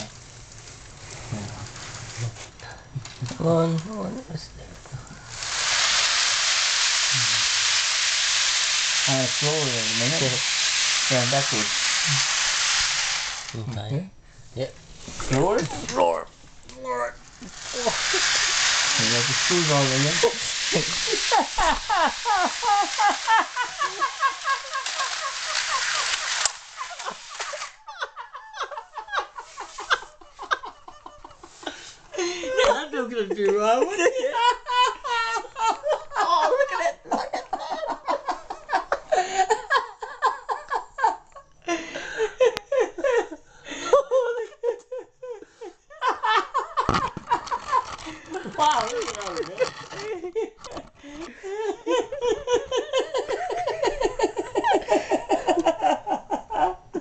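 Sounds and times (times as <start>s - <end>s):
steady hiss: 0.0s - 44.0s
model train running on track: 5.3s - 13.5s, 17.6s - 27.7s.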